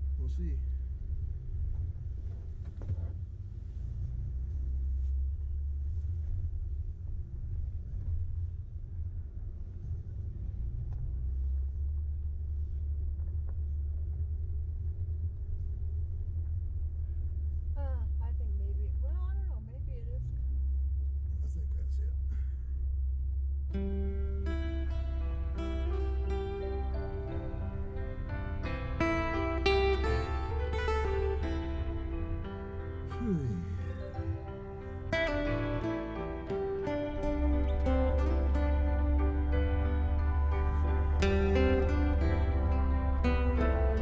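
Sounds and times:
off-road vehicle rumbling: 0.0s - 44.0s
acoustic guitar music: 23.7s - 44.0s.

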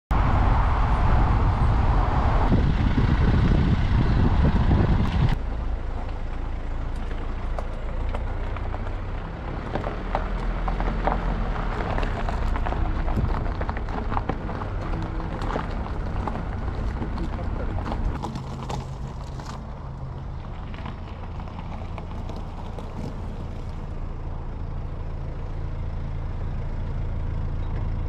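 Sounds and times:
car driving rumble: 0.1s - 28.0s
road and wind noise: 0.1s - 28.0s
tyres crunching on gravel: 4.7s - 26.8s.

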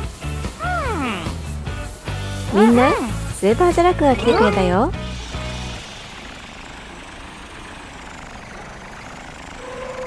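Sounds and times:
cartoon truck rushing noise: 0.4s - 1.7s, 2.4s - 10.0s
low background music chord: 0.5s - 5.8s.

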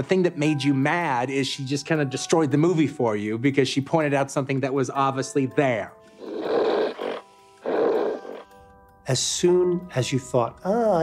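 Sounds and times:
leopard growling: 6.2s - 8.5s.

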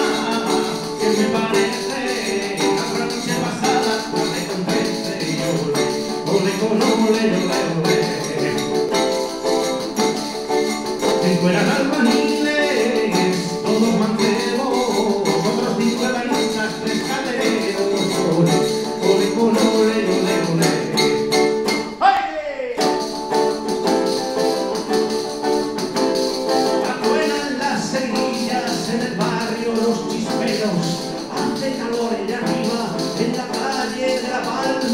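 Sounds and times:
shaken tambourine-like percussion: 0.0s - 22.0s, 22.8s - 34.9s.

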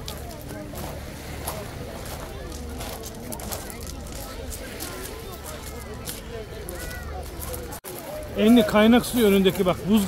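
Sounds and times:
crowd chattering: 0.0s - 10.0s
footsteps on pebbles: 0.0s - 10.0s.

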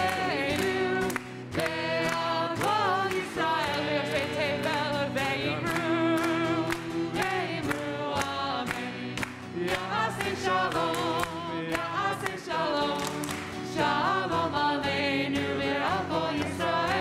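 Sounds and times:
hands clapping: 0.0s - 17.0s
voices singing together: 0.0s - 17.0s.

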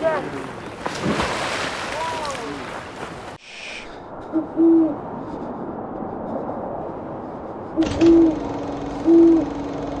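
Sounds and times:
owl hooting: 4.4s - 5.0s, 7.8s - 9.8s
steady low drone: 5.0s - 10.0s.

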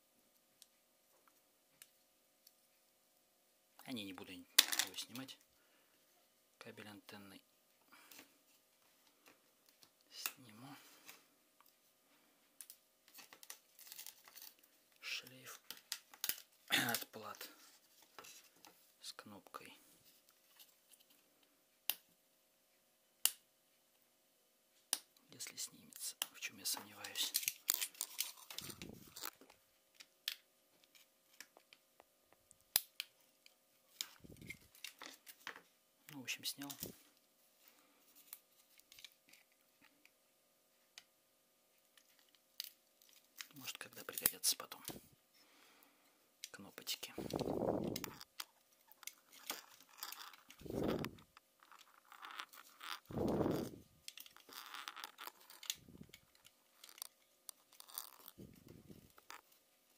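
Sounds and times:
small clicks of plastic parts: 12.6s - 17.1s, 54.0s - 59.6s
plastic and metal clicks and scrapes: 46.5s - 59.6s.

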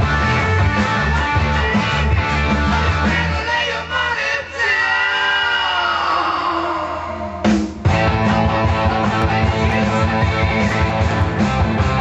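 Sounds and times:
drums: 0.0s - 4.1s, 6.0s - 12.0s
electric guitar note sliding down: 6.2s - 11.3s.

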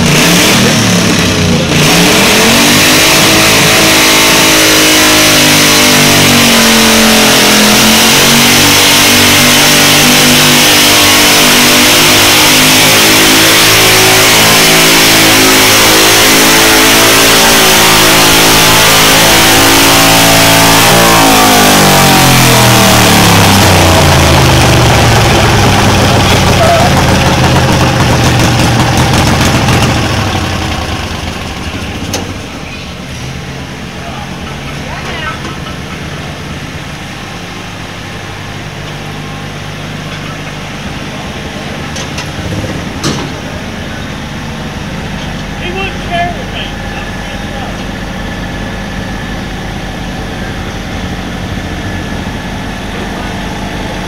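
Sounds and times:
tractor engine at high revs: 0.0s - 54.0s.

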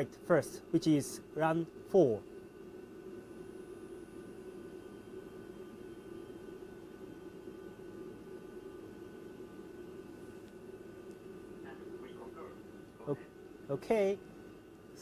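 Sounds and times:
faint steady tones: 0.0s - 15.0s
ventilation fans humming: 0.0s - 15.0s.

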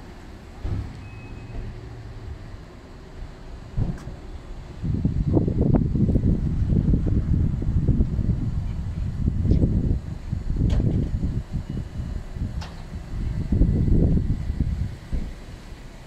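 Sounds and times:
wind buffeting microphone: 3.8s - 16.0s.

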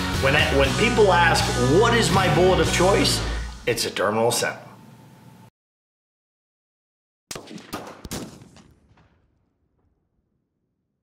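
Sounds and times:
gunshot cracks with echo: 7.3s - 9.4s.

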